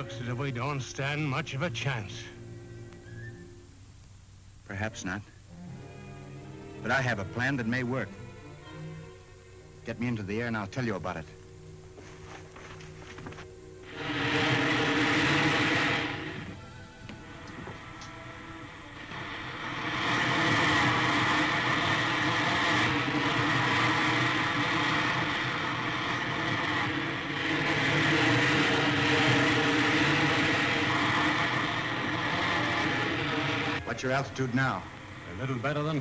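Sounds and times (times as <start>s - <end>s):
background music: 0.0s - 36.0s
rocket ship hissing roar: 13.8s - 36.0s.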